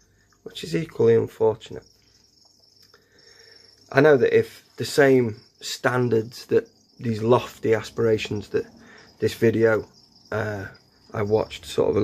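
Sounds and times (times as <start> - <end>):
crickets chirping: 0.0 - 12.0
person speaking: 0.4 - 1.9, 3.9 - 12.0
soft breath: 2.9 - 3.9, 8.7 - 9.2.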